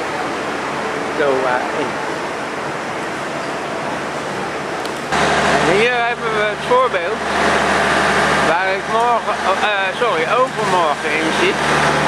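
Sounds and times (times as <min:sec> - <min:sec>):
steady rushing noise: 0:00.0 - 0:12.0
people talking: 0:01.2 - 0:02.0, 0:05.6 - 0:07.2, 0:08.4 - 0:11.6
low engine hum: 0:04.0 - 0:12.0.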